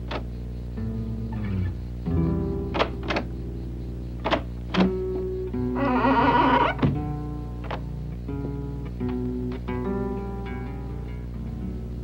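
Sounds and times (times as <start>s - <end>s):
soft background music: 0.0s - 12.0s
metal door latch clicking: 2.8s - 3.3s.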